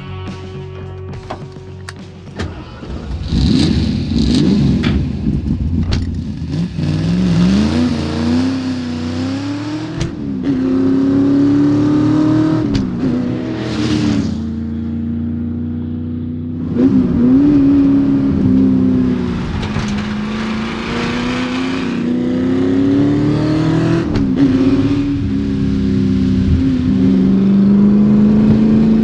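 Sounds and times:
car engine accelerating: 0:01.2 - 0:29.0
sharp clicks and knocks: 0:05.8 - 0:06.2, 0:19.4 - 0:21.1.

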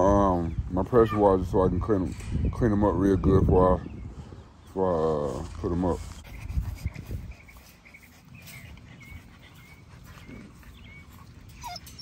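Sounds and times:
puppies whining: 0:06.3 - 0:12.0
puppy yelp: 0:11.5 - 0:12.0.

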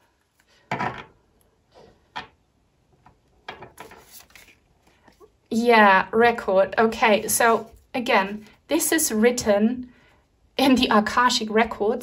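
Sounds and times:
cards clicking and sliding: 0:03.8 - 0:04.6.

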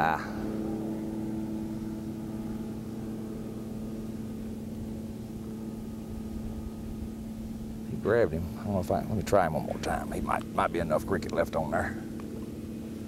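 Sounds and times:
motor humming steadily: 0:00.0 - 0:13.0.

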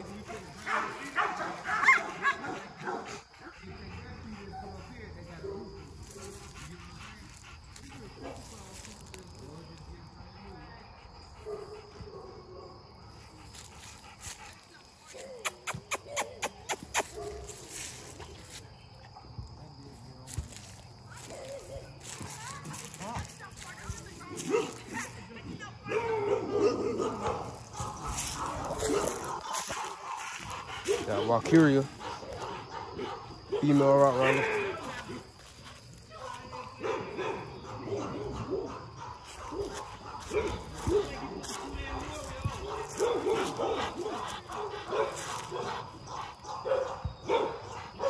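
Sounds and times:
dogs barking: 0:00.0 - 0:06.2, 0:11.4 - 0:12.8, 0:24.4 - 0:25.2, 0:25.9 - 0:35.6, 0:36.2 - 0:48.0.

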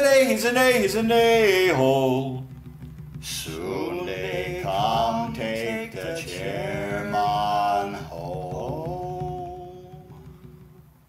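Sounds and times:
low backing beat: 0:01.0 - 0:11.0
person singing a long note: 0:03.5 - 0:10.8.

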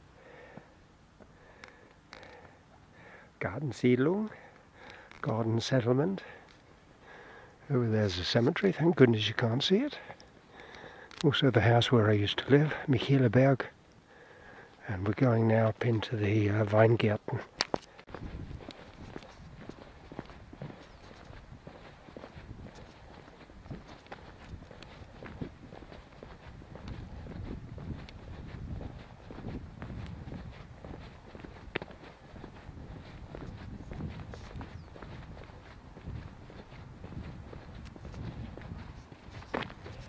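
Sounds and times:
footsteps on paved and dirt lane: 0:00.0 - 0:40.0
low microphone rumble: 0:18.1 - 0:40.0.

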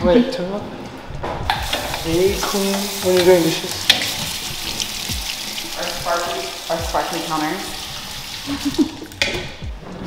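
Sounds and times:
water running into steel sink: 0:01.5 - 0:09.3.

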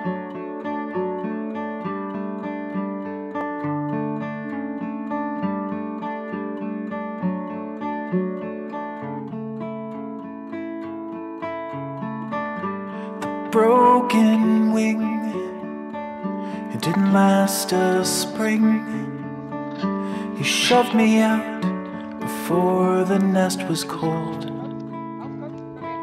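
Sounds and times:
guitar strumming chords: 0:00.0 - 0:26.0.

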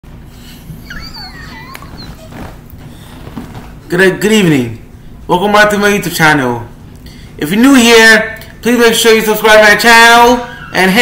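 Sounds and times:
low steady hum: 0:00.1 - 0:11.0
high-pitched animal whine: 0:00.8 - 0:02.6.

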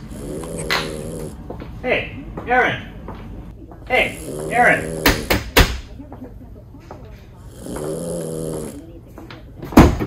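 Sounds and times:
man snoring: 0:00.0 - 0:01.4, 0:03.9 - 0:05.5, 0:07.5 - 0:08.8.

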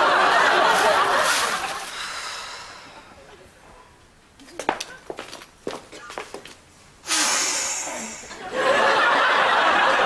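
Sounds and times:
studio audience laughter: 0:00.0 - 0:01.9, 0:08.4 - 0:10.0.

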